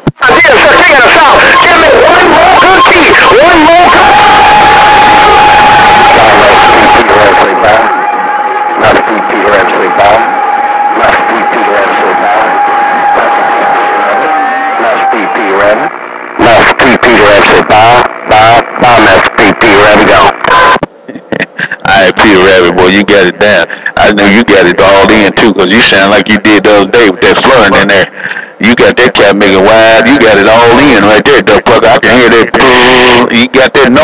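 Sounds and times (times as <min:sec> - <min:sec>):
garbled radio voices: 0:00.0 - 0:34.0
radio static: 0:00.0 - 0:34.0
steady radio whistle: 0:00.1 - 0:34.0.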